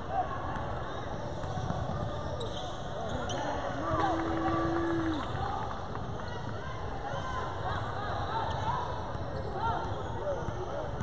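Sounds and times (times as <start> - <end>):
sneakers squeaking: 0.9 - 3.6.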